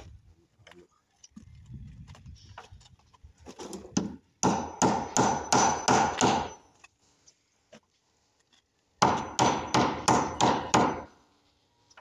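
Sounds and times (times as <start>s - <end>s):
hammer striking wooden frame: 4.0s - 6.6s, 9.0s - 11.2s.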